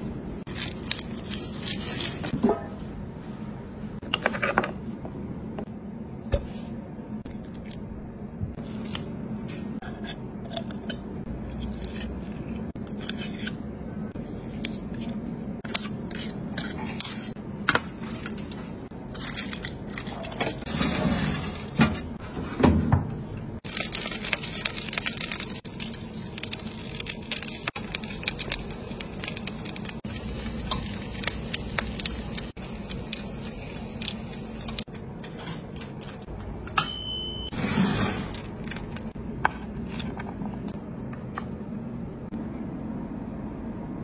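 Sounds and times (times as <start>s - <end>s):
butter sizzling: 23.6s - 34.8s.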